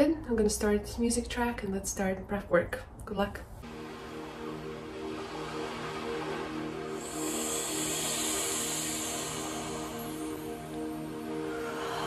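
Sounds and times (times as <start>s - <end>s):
ambient music with low chords: 3.6s - 12.0s.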